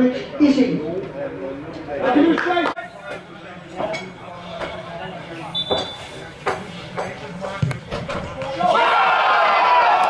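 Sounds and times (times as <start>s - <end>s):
referee's whistle: 5.5s - 6.2s
ball kick thumps: 7.5s - 8.2s.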